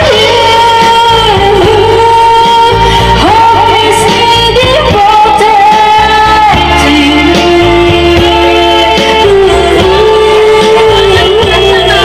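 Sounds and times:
karaoke singing over backing track: 0.0s - 12.0s.

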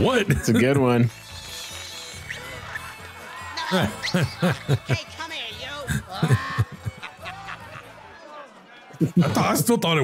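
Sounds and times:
soft music: 0.0s - 8.2s.

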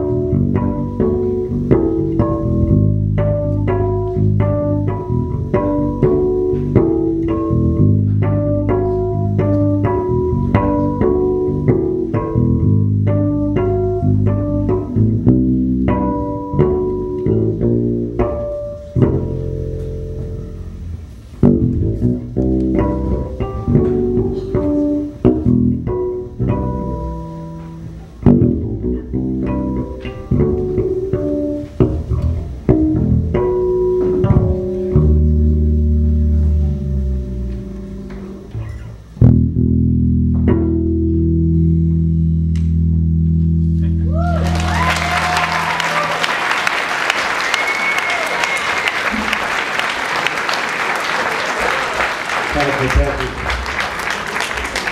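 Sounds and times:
electric bass guitar solo: 0.0s - 46.6s
audience applauding and cheering: 44.1s - 54.9s
whistles from audience: 47.2s - 49.1s.

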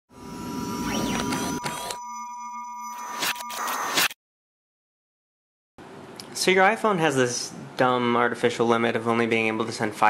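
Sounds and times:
electronic logo sting: 0.1s - 4.2s.

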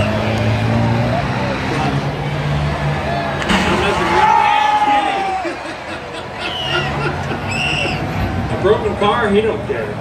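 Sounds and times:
race car engines running: 0.0s - 10.0s.

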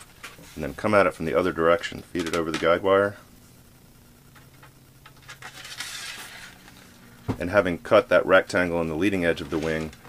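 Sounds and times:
arrow scraping along metal wire: 5.4s - 6.6s.

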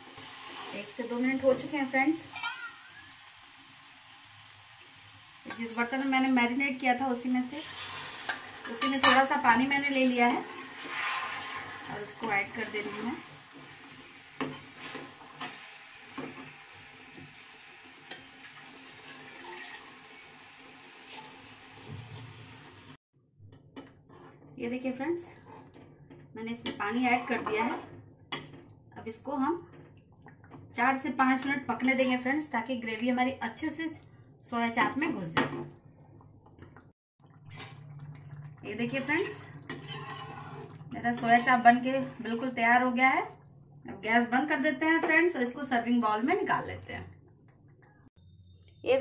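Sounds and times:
spoon stirring and scraping in pan: 0.0s - 1.6s, 7.5s - 22.4s, 23.5s - 28.8s, 31.3s - 32.4s, 36.6s - 42.4s
steady sizzle: 0.0s - 23.0s, 33.6s - 48.7s
gravy bubbling: 35.2s - 44.8s, 46.2s - 48.6s.

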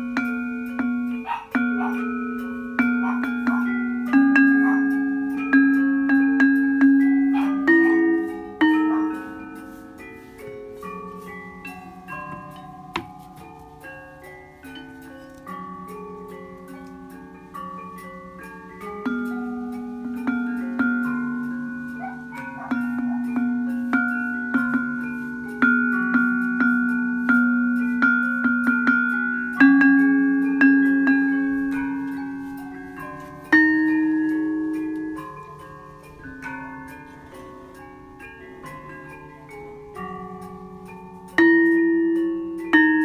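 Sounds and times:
mallet striking iron keys: 0.0s - 43.0s.

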